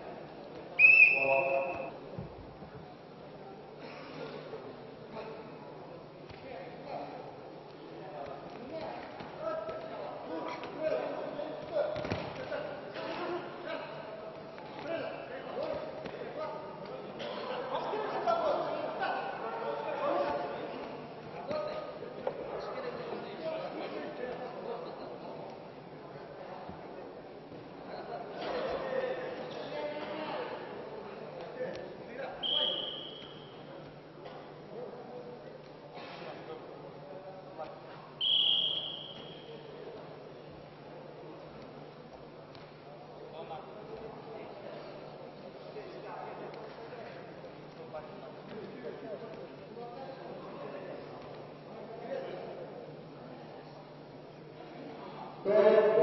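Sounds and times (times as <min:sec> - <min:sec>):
spectators chattering: 0:00.0 - 0:56.0
referee whistle: 0:00.8 - 0:02.0, 0:32.4 - 0:33.6, 0:38.2 - 0:39.7.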